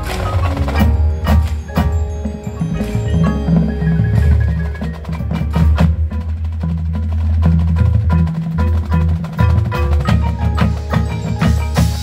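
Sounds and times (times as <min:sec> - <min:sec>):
pitched mallet notes: 0:00.0 - 0:12.0
sharp percussion strikes: 0:00.0 - 0:12.0.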